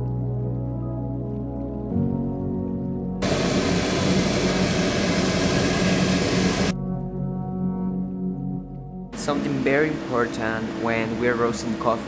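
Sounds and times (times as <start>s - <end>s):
background music: 0.0s - 3.4s, 6.5s - 12.0s
cooling fan blowing: 3.2s - 6.8s, 9.2s - 12.0s.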